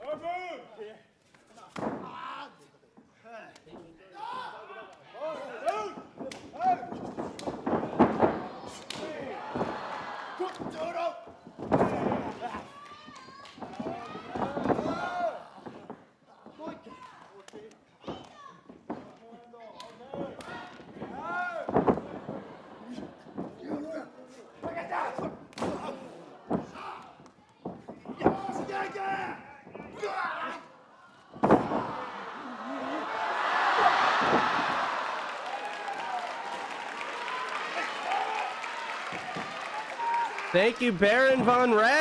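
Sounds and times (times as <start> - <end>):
wrestlers slamming onto ring mat: 5.8 - 10.0, 10.6 - 12.5, 13.6 - 16.1, 20.2 - 22.4, 31.3 - 32.2, 33.7 - 35.2.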